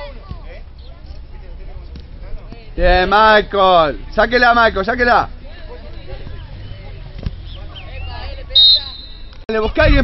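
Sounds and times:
referee's whistle blast: 0:08.6 - 0:09.3.

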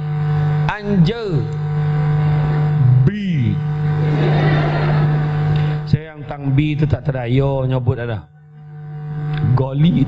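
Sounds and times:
electrical hum through speakers: 0:00.0 - 0:10.0
man speaking: 0:00.7 - 0:01.6, 0:02.8 - 0:03.7, 0:05.9 - 0:08.3, 0:09.4 - 0:10.0.

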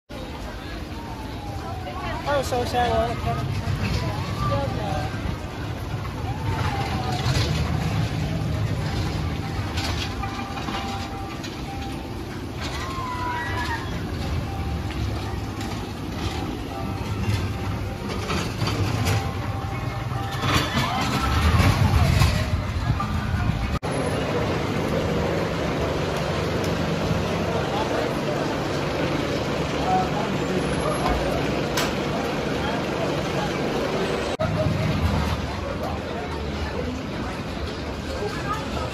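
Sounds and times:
people's voices: 0:00.1 - 0:38.9
roller coaster rumbling on steel track: 0:00.1 - 0:38.9.

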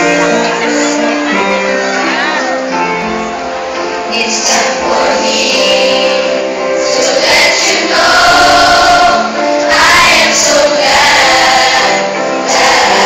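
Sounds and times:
large choir singing: 0:00.0 - 0:13.0.

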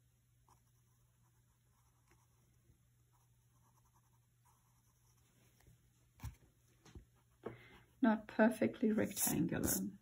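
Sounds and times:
pencil scratching on paper: 0:00.4 - 0:05.4, 0:09.0 - 0:09.8.

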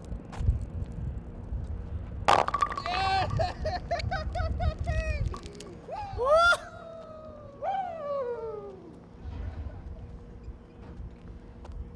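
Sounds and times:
person whooping excitedly: 0:02.9 - 0:03.5, 0:04.3 - 0:09.0.

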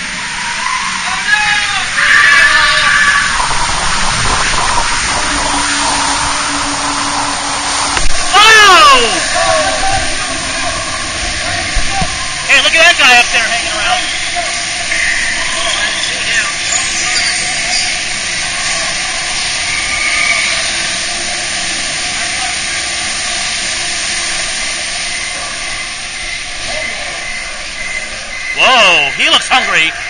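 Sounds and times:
water rushing along channel: 0:00.0 - 0:30.0.

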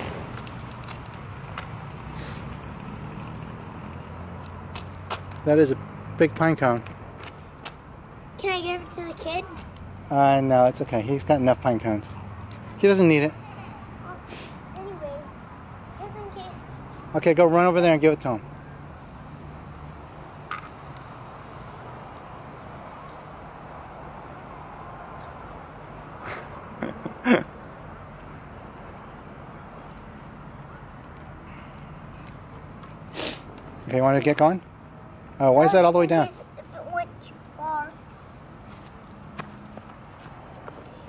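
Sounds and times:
low outdoor rumble: 0:00.0 - 0:04.7.

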